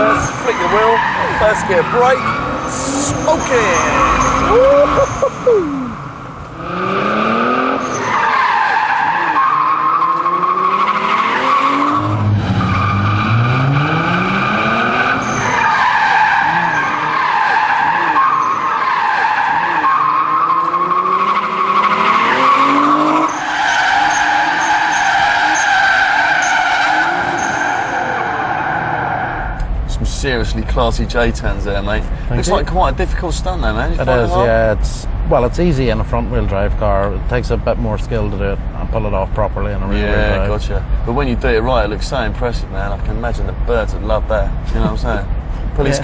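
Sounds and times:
tyres squealing: 0:00.0 - 0:06.0, 0:07.8 - 0:29.6
car engine revving hard: 0:05.8 - 0:08.1, 0:10.2 - 0:15.7, 0:19.5 - 0:23.4.

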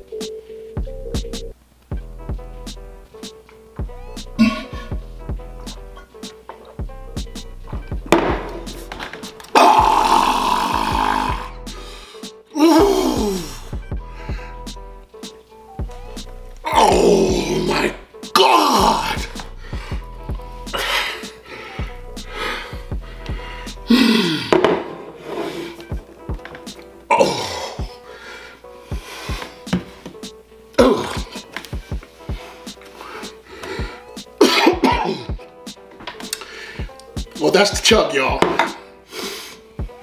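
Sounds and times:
hip-hop beat: 0:00.0 - 0:40.0
man groaning: 0:04.4 - 0:05.0, 0:09.6 - 0:11.6, 0:12.6 - 0:13.7, 0:16.6 - 0:19.9, 0:23.8 - 0:24.6, 0:27.1 - 0:28.0, 0:30.8 - 0:31.5
deep kick drum hits: 0:07.8 - 0:08.8.

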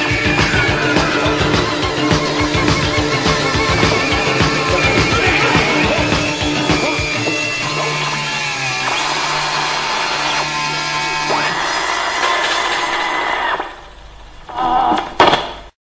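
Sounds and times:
droning electronic buzz: 0:00.0 - 0:14.4.

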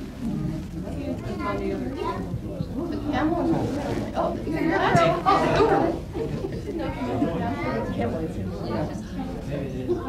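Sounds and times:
indistinct chatter: 0:00.0 - 0:10.0.

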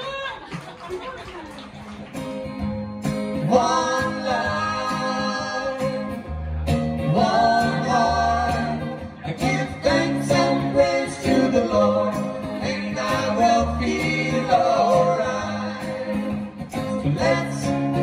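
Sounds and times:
people talking and laughing: 0:00.0 - 0:18.0
strummed acoustic guitar chords: 0:02.1 - 0:18.0
person singing: 0:03.4 - 0:06.4, 0:07.0 - 0:18.0.

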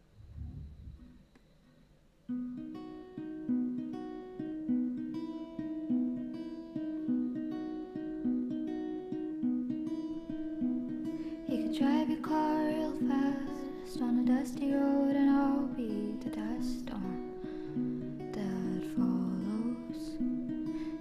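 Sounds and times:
acoustic guitar picked notes: 0:02.3 - 0:21.0.

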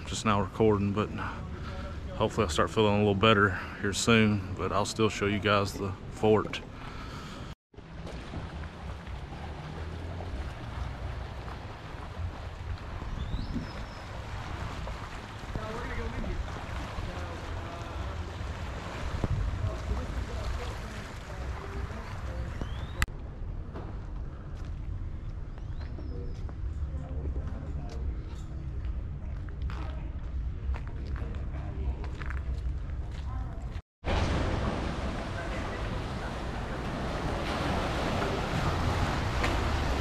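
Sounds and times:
wind buffeting microphone: 0:08.2 - 0:23.1.

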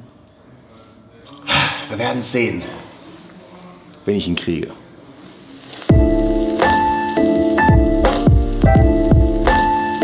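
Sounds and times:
man speaking: 0:01.3 - 0:03.0.

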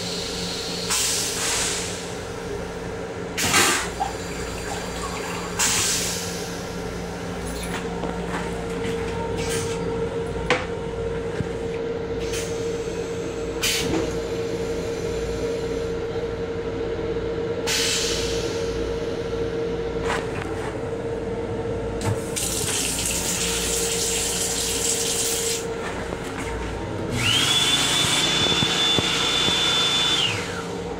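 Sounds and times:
train hum: 0:00.0 - 0:30.9
hand dryer whining: 0:27.0 - 0:30.8.

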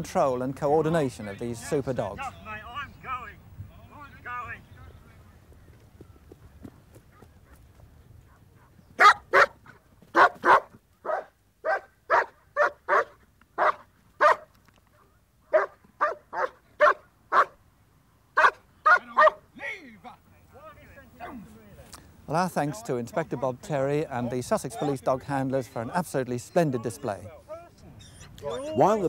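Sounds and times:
dog barking: 0:08.3 - 0:14.5, 0:15.5 - 0:17.6, 0:18.4 - 0:19.4.

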